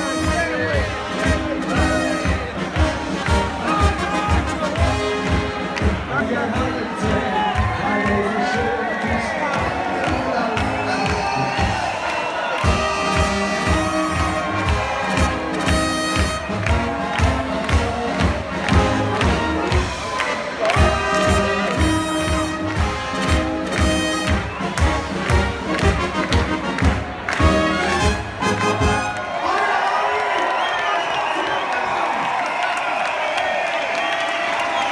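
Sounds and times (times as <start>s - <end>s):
brass band playing a march: 0.0s - 29.3s
crowd cheering: 0.0s - 34.9s.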